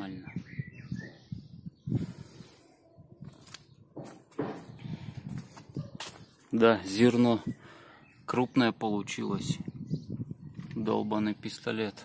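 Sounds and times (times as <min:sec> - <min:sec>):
footsteps: 0:03.2 - 0:06.5
handheld camera rustling: 0:03.2 - 0:06.6.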